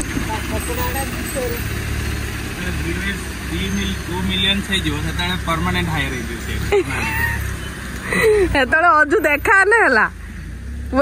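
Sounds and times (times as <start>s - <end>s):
people talking: 0.0s - 1.6s
car engine idling: 0.0s - 11.0s.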